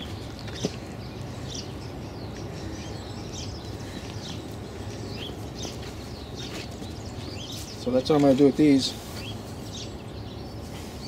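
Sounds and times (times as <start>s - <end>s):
low background rumble: 0.0s - 7.9s
songbirds chirping: 0.0s - 11.0s.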